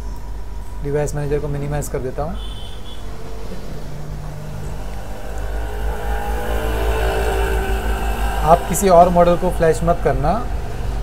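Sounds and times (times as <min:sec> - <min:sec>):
low mechanical rumble: 0:02.8 - 0:11.0.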